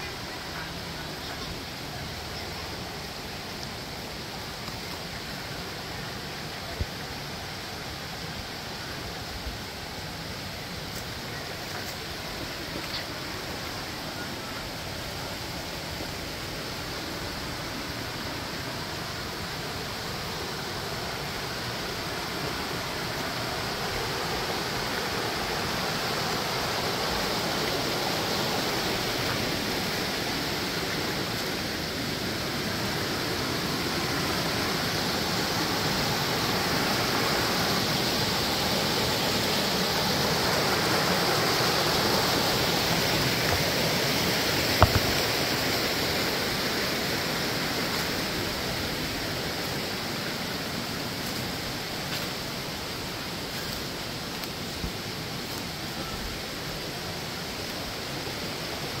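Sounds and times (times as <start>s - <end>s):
stream rushing over boulders: 0.0s - 59.0s.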